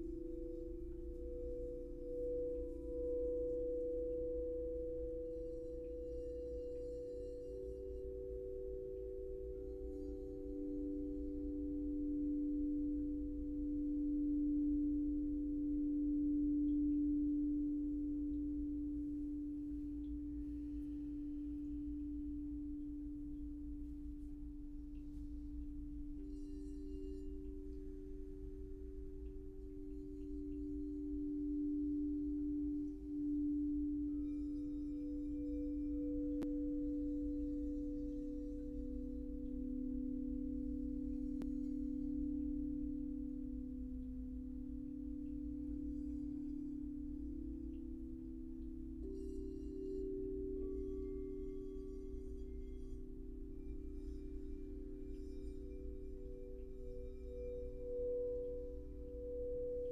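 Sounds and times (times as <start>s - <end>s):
crystal singing bowls ringing: 0.0s - 59.9s.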